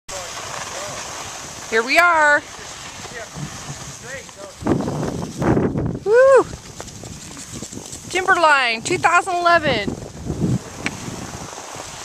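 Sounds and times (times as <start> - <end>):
wind buffeting microphone: 0.7 - 12.0.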